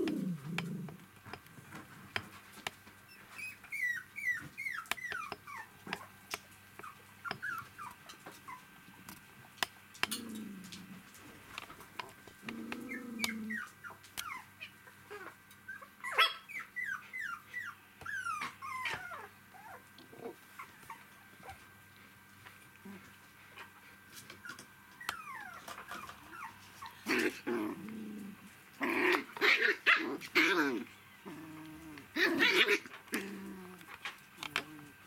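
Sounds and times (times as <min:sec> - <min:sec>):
puppies whimpering and squeaking: 0:03.0 - 0:06.2, 0:06.8 - 0:08.8, 0:12.7 - 0:21.7, 0:24.2 - 0:27.5, 0:29.1 - 0:33.3
puppies yelping and squealing: 0:03.1 - 0:06.2, 0:06.8 - 0:08.7, 0:12.8 - 0:19.8, 0:24.4 - 0:27.5, 0:29.0 - 0:31.4, 0:32.1 - 0:33.3.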